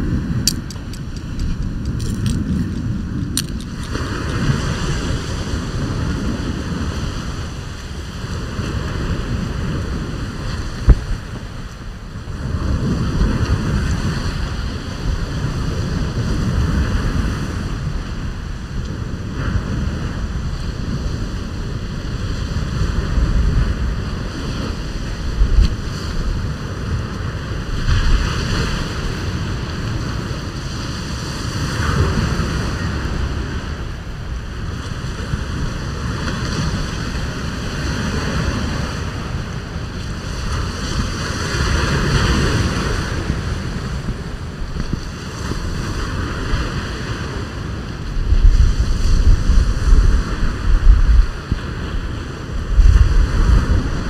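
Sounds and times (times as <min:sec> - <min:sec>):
surf breaking on beach: 0:00.0 - 0:54.0
wind buffeting microphone: 0:00.0 - 0:54.0.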